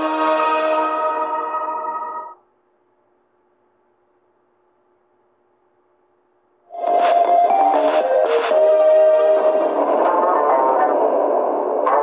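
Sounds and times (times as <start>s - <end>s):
faint steady hum and hiss: 0.0s - 6.7s.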